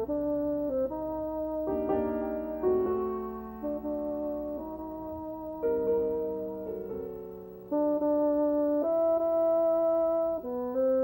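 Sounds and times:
bassoon holding notes: 0.0 - 11.0
piano chords: 0.0 - 11.0.

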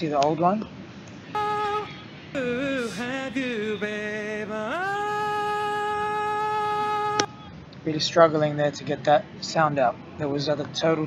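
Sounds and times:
man singing high note: 1.4 - 7.3.

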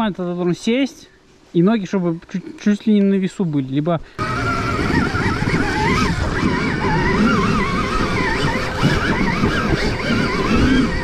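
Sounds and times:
dirt bike motor revving: 4.2 - 11.0
rumble of tyres and chassis: 4.2 - 11.0.

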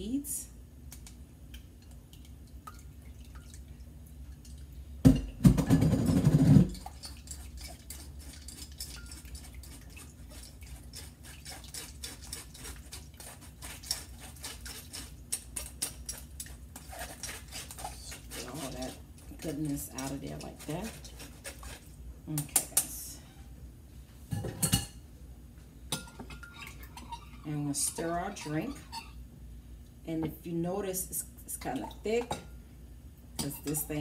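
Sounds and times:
juice dripping through strainer: 0.9 - 5.1, 6.7 - 22.7.

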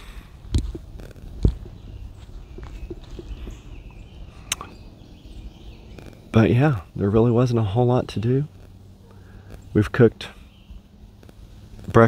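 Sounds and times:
low thumps: 0.0 - 5.0
sharp click: 4.5 - 4.8.

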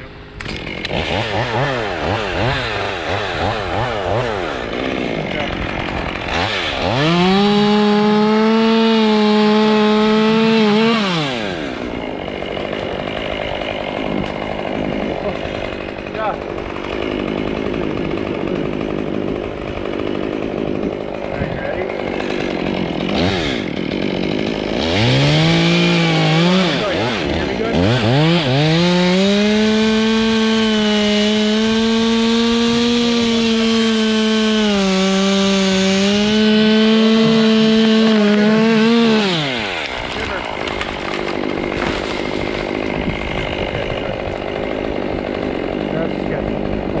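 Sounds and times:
chainsaw revving and cutting wood: 0.0 - 47.0
wind noise on microphone: 42.4 - 44.3.

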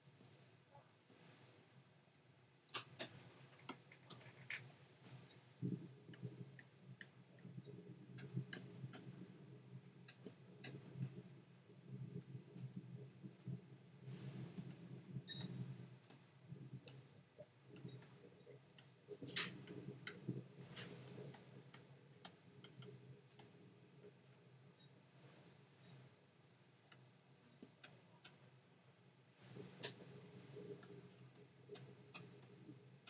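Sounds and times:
low steady hum: 0.0 - 33.0
faint clicks and taps: 0.1 - 1.0, 2.1 - 33.0.

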